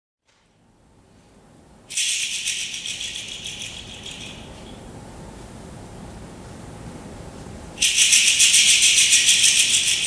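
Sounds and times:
shaker rattle shaken rapidly: 0:01.9 - 0:04.8, 0:07.8 - 0:10.0.

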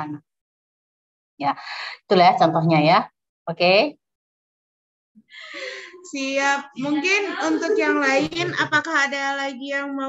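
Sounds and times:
woman gasping breath: 0:05.3 - 0:06.0.

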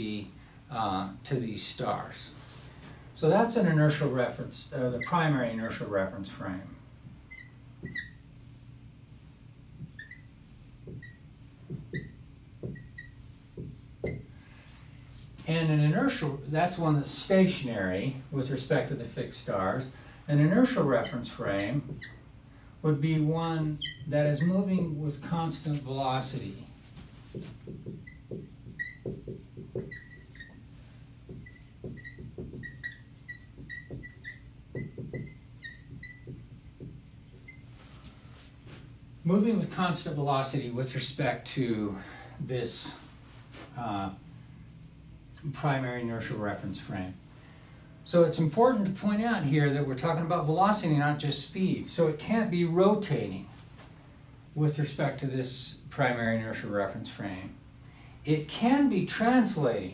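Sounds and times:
marker squeaking on whiteboard: 0:04.8 - 0:06.6, 0:07.2 - 0:08.3, 0:09.8 - 0:14.3, 0:20.4 - 0:22.3, 0:23.0 - 0:37.9
soft marker taps: 0:10.8 - 0:14.3, 0:27.2 - 0:30.6, 0:31.3 - 0:37.6.

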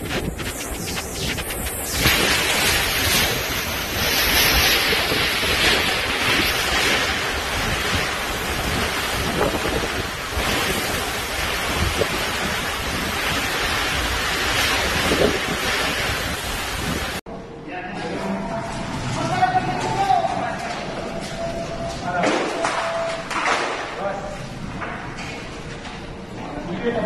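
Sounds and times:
driving rain: 0:00.0 - 0:17.2
strong gusting wind: 0:00.0 - 0:17.2
wind buffeting microphone: 0:00.0 - 0:17.2.

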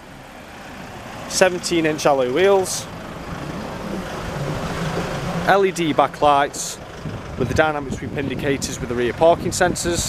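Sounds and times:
motor vehicle hum: 0:00.0 - 0:10.0.

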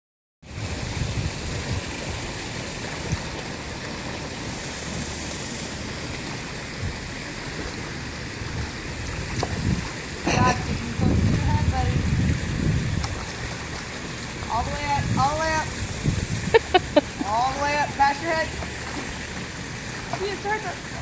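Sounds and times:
water splashing from swimming: 0:00.4 - 0:21.0.

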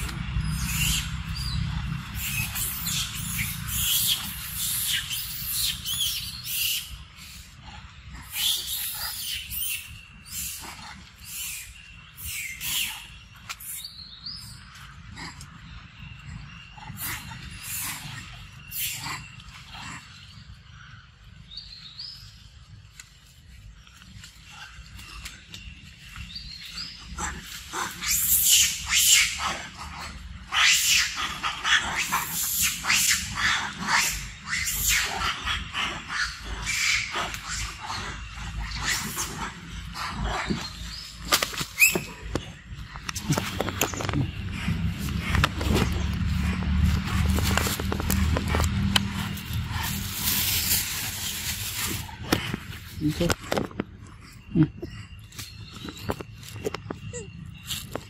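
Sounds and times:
low rumble: 0:39.1 - 0:55.2
monkey biting and chewing: 0:43.1 - 0:53.7.

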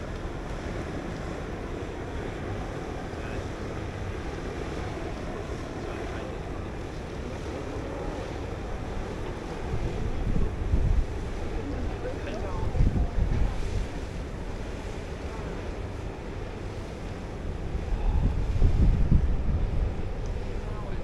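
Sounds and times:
choppy water: 0:00.0 - 0:21.0
wind buffeting microphone: 0:00.0 - 0:21.0.

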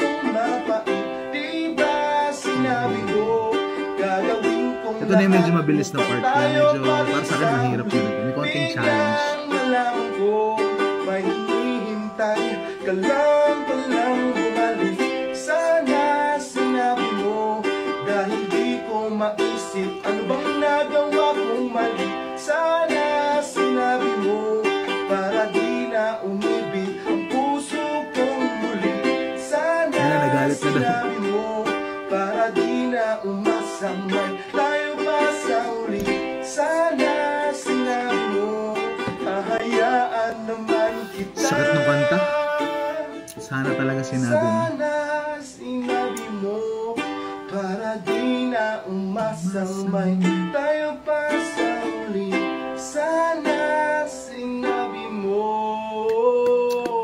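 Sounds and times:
man singing: 0:00.0 - 0:57.0
strummed ukulele: 0:00.0 - 0:57.0.

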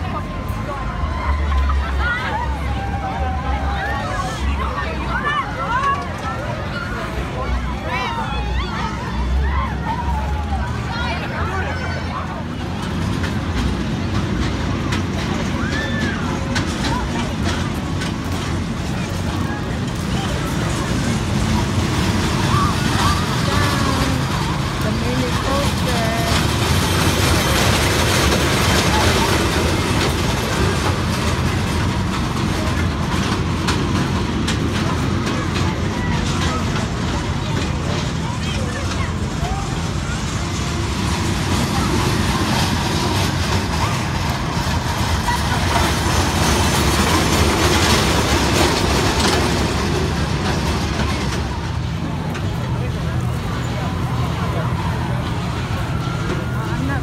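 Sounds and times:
low rumble of rides running: 0:00.0 - 0:57.0
people talking: 0:00.0 - 0:57.0.

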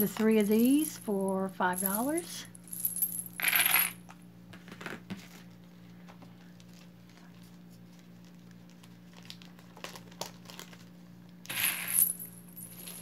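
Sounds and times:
steady low hum: 0:00.0 - 0:09.9, 0:10.7 - 0:13.0
jewelry clinking on a tabletop: 0:01.7 - 0:04.0, 0:11.5 - 0:13.0
rustling crinkling noise: 0:04.6 - 0:11.3.

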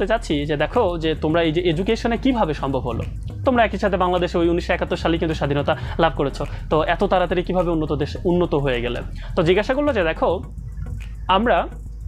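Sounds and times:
man speaking: 0:00.0 - 0:10.5, 0:11.3 - 0:11.8.

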